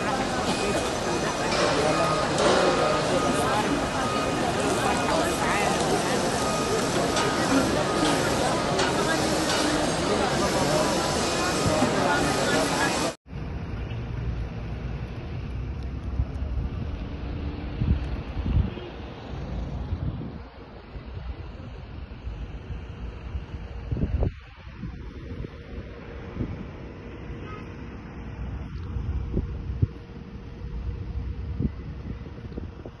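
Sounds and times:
road traffic: 0.0s - 33.0s
wind buffeting microphone: 16.4s - 27.4s, 28.5s - 33.0s.

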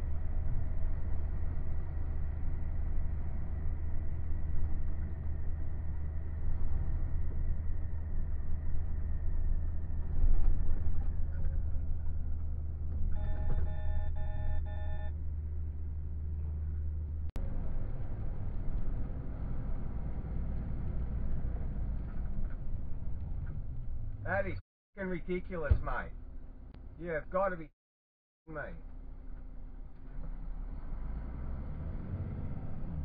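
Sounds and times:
truck engine drone: 0.0s - 27.6s, 28.5s - 33.0s
road noise: 0.0s - 27.7s, 28.5s - 33.0s
electronic beeps: 13.1s - 15.1s.

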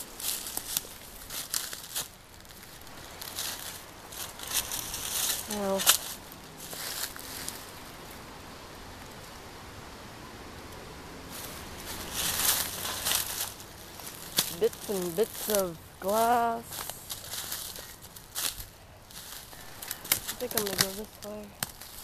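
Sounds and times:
footsteps crunching dry leaves: 0.0s - 8.2s, 11.2s - 22.0s
faint outdoor hush: 0.0s - 22.0s.

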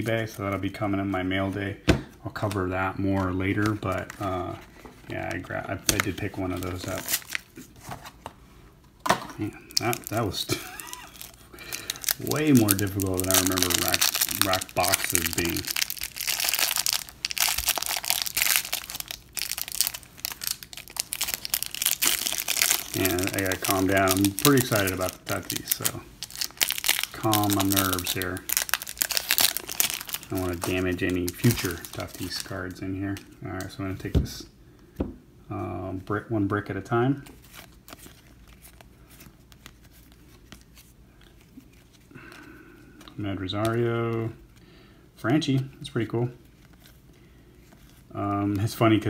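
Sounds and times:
cellophane wrap crinkling: 2.4s - 7.9s, 9.4s - 33.8s, 37.2s - 44.3s.

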